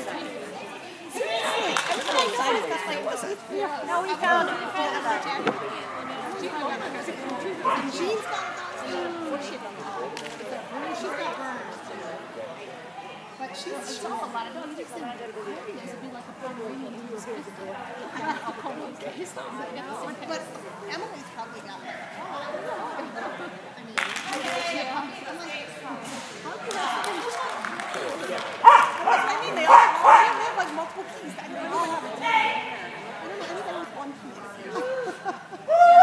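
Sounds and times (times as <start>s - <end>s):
indistinct chatter of voices: 0.0s - 36.0s.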